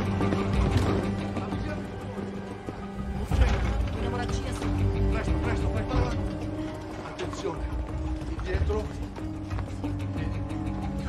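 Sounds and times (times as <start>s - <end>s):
gurney rattling and clicking: 0.0s - 10.6s
low sustained music: 0.0s - 11.0s.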